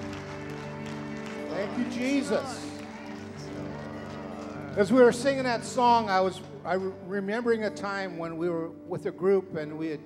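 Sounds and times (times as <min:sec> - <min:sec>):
man speaking: 0:01.5 - 0:02.8.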